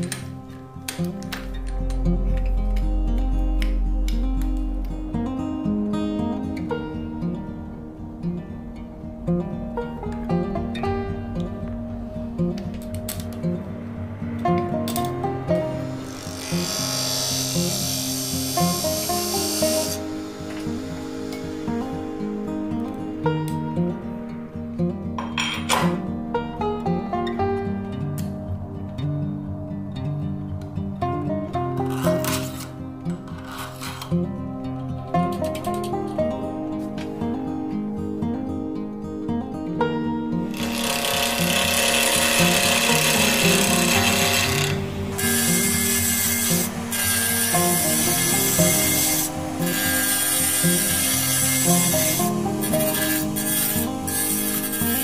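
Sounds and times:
background music: 0.0 - 55.0
pen mill cutting wood hiss: 14.9 - 23.7, 40.5 - 55.0
abrasive rubbing on spinning wood: 15.6 - 22.6, 40.6 - 55.0.

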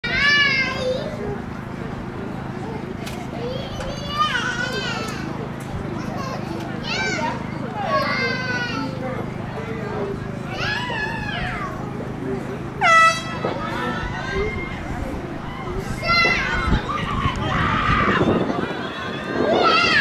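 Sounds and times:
low background hum: 0.0 - 20.0
murmur of voices: 0.0 - 20.0
young voices shouting: 0.0 - 20.0.

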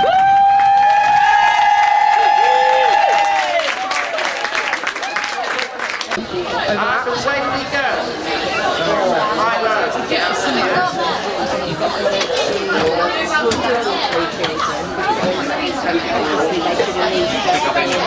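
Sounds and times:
people chattering: 0.0 - 18.0.

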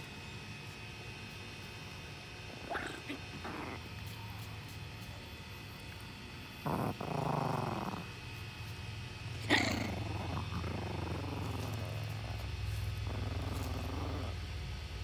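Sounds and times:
puppy growling: 2.5 - 4.2, 5.7 - 8.6, 9.3 - 15.0.

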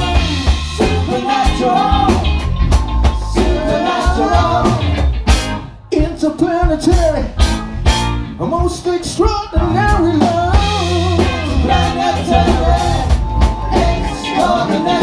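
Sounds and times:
live band playing: 0.0 - 15.0.

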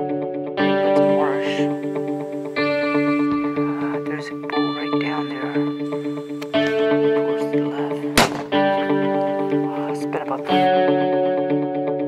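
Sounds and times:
plucked guitar chords: 0.0 - 12.0
sharp click: 8.2 - 8.6.

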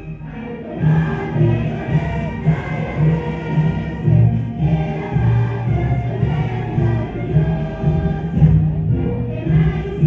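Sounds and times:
group singing together: 0.0 - 10.0.

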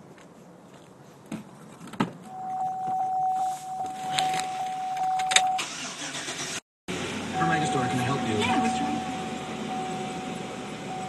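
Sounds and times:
thin steady tone: 2.3 - 5.4, 7.4 - 11.0
car idling hum: 2.3 - 11.0.

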